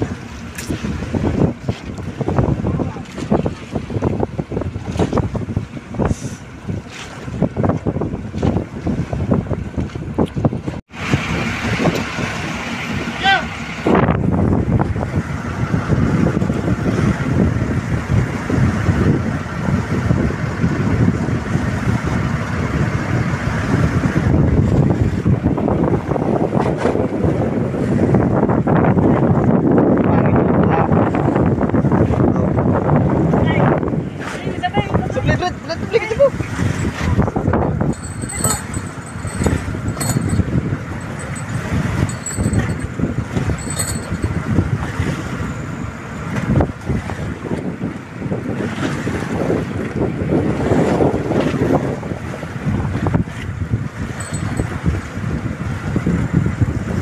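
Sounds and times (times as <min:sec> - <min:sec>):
wind buffeting microphone: 0:00.0 - 0:13.1, 0:13.7 - 0:57.0
boat engine droning: 0:32.6 - 0:56.9.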